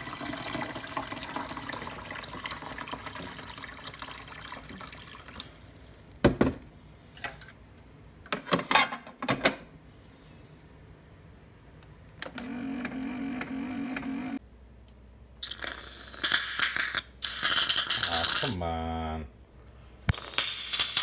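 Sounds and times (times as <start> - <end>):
coffee brewer humming: 0.0 - 6.4, 12.2 - 14.4
whipped cream can spraying: 15.4 - 18.6, 20.1 - 21.0.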